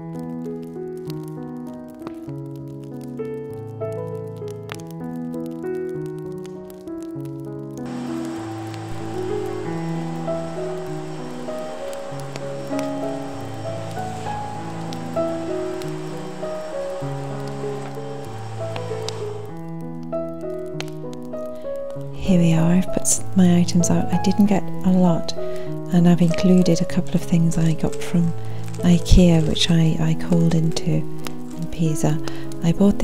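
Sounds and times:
instrumental background music: 0.0 - 33.0
vacuum cleaner hissing on tiles: 7.9 - 19.6.

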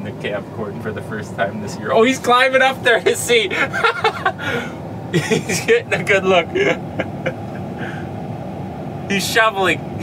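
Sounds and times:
combine harvester rumbling: 0.0 - 10.0.

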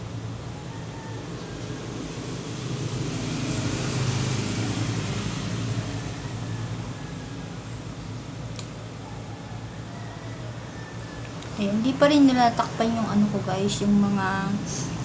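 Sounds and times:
motor vehicle passing: 0.0 - 9.2.

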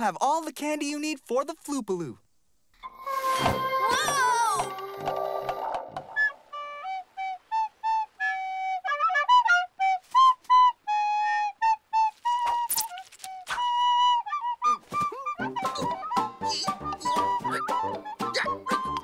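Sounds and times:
wooden flute playing a tune: 3.0 - 19.0.

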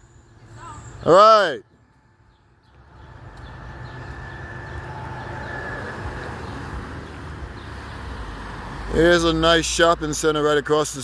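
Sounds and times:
car driving past: 2.9 - 9.6.

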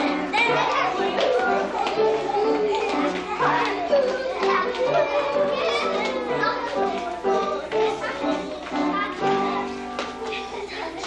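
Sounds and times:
young children calling and chattering: 0.0 - 11.0.

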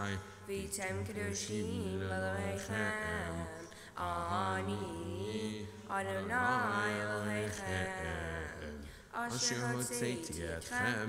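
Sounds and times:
person chanting prayer: 0.0 - 11.0.

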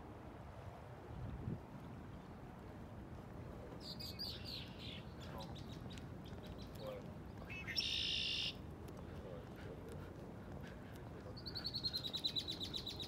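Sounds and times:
songbirds calling: 3.8 - 9.2, 10.6 - 13.0.

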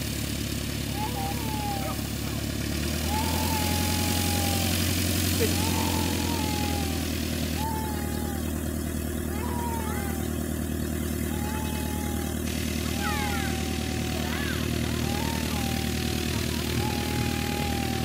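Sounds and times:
light aircraft engine droning: 0.0 - 18.0.

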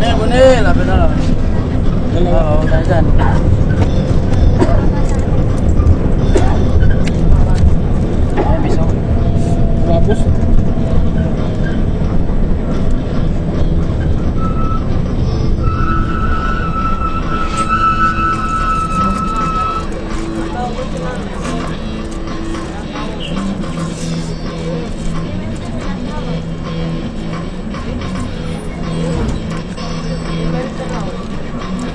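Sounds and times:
bus engine and road noise: 0.0 - 31.9.

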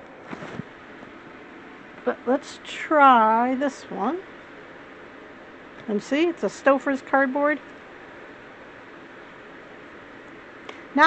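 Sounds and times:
low hiss of room tone: 0.0 - 11.0.

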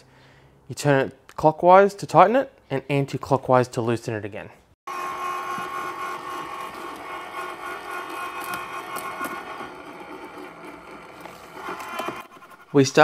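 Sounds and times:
shredder motor whine: 4.9 - 12.8.

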